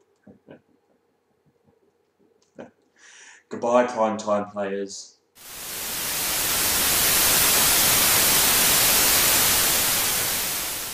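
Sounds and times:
tv static hiss: 0:05.4 - 0:10.9.

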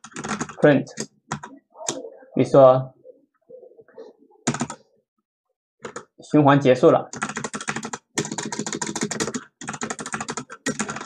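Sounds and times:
fast typing on keyboard: 0:00.0 - 0:02.0, 0:04.5 - 0:04.8, 0:05.8 - 0:06.1, 0:07.1 - 0:11.0.

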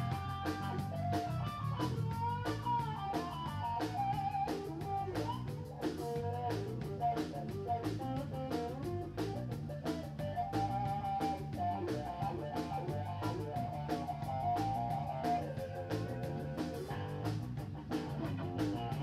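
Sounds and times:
bass guitar: 0:00.0 - 0:19.0
drum kit beat: 0:00.0 - 0:19.0
electric guitar lead: 0:00.0 - 0:19.0.

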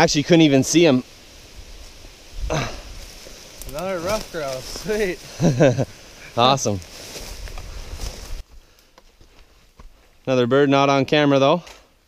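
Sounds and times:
footsteps through undergrowth: 0:01.0 - 0:10.3.

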